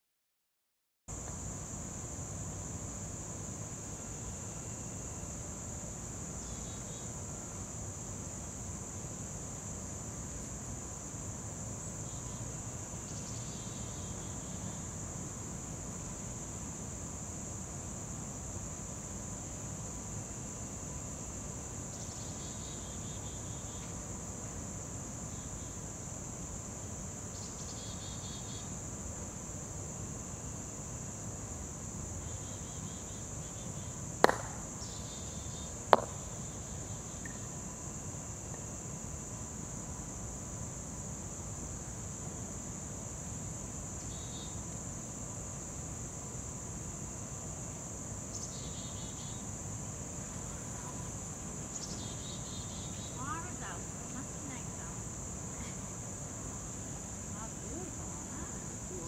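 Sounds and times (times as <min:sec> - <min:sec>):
crickets trilling: 0:01.1 - 0:59.0
faint insect chirps: 0:01.1 - 0:59.0
mallet striking ball: 0:34.2 - 0:34.6, 0:36.0 - 0:36.2
ball striking another ball: 0:34.2 - 0:34.7, 0:35.9 - 0:36.3.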